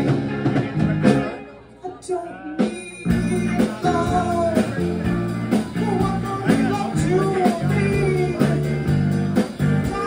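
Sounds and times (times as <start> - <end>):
live rock band playing: 0.0 - 10.0.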